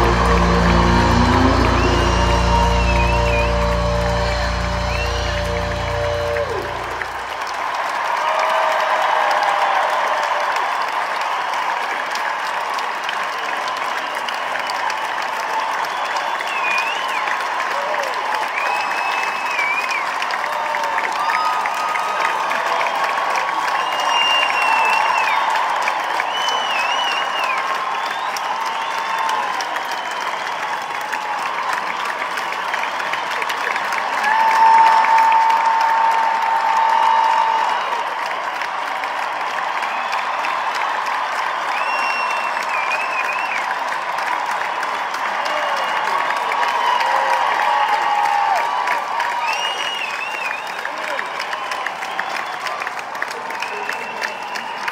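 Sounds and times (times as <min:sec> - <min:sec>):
crowd cheering: 0:00.0 - 0:54.9
crowd clapping: 0:00.0 - 0:54.9
whistles and shouts: 0:02.7 - 0:05.4, 0:15.8 - 0:17.4, 0:18.4 - 0:20.2, 0:23.7 - 0:25.5, 0:26.2 - 0:30.9, 0:41.6 - 0:43.7, 0:49.2 - 0:52.7, 0:53.4 - 0:54.9.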